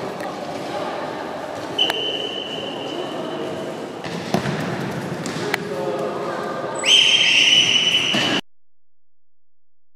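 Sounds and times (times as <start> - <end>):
players' voices: 0.0 - 7.7.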